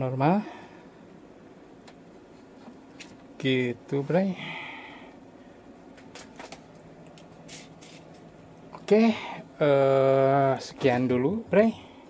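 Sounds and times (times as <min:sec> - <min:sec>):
phone handling clicks and rustles: 0:05.9 - 0:08.3.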